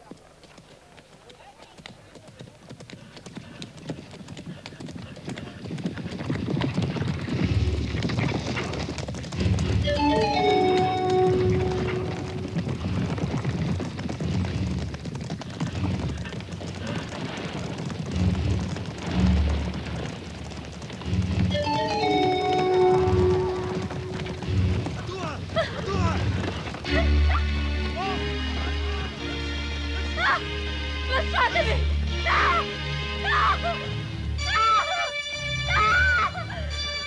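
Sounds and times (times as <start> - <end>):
horses galloping hoofbeats: 0.0 - 37.0
film music with held notes: 9.4 - 12.8, 21.0 - 37.0.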